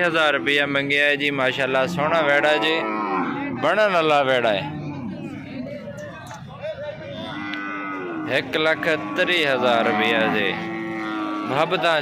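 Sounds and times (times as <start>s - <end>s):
faint market noise: 0.0s - 12.0s
cow mooing: 1.6s - 5.6s, 7.2s - 12.0s.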